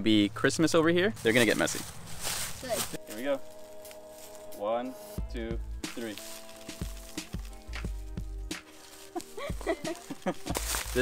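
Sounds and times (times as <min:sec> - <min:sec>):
held tones with deep bass beats: 0:04.8 - 0:08.7.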